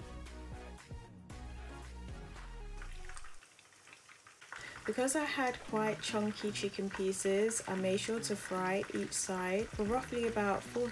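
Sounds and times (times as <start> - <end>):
background music with steady beat: 0.0 - 3.4, 5.6 - 10.9
chicken frying in oil: 2.7 - 10.9.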